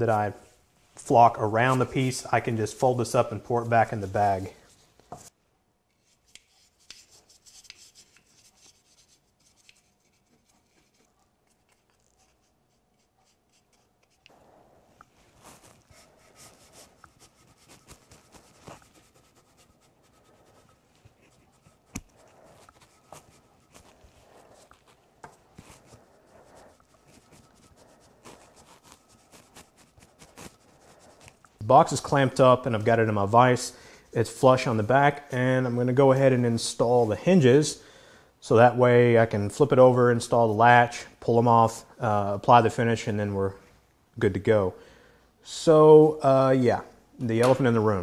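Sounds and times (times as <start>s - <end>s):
hand pump puffing and rubbing: 15.0s - 31.6s.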